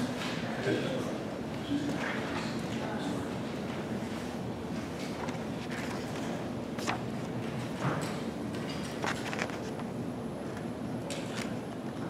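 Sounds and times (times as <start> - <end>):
clicks and rustles of people: 0.0 - 0.6, 1.5 - 9.9, 10.5 - 12.0.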